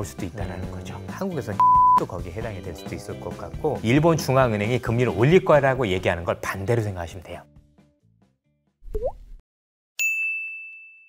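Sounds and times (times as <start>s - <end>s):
faint background music: 0.0s - 7.5s
cartoon pop with upward pitch slide: 8.9s - 9.4s
bright bell ding: 10.0s - 11.0s.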